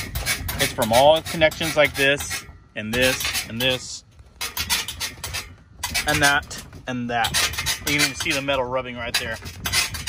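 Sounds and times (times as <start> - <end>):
metal trailer joints squeaking: 0.0 - 10.0.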